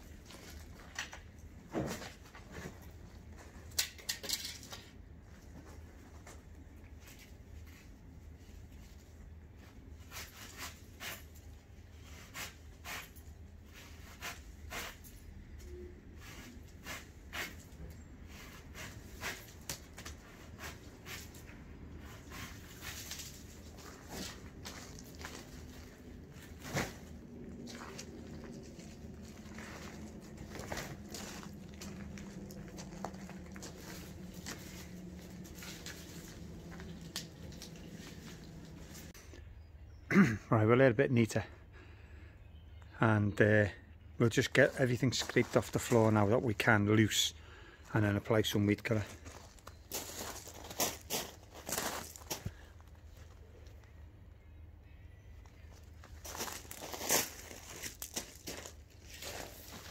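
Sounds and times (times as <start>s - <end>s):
dead leaves snapping and crackling: 26.7s - 39.1s.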